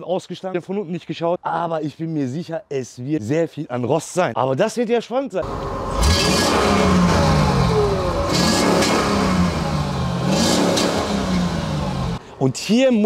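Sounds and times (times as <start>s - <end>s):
car engine revving: 5.4s - 12.2s.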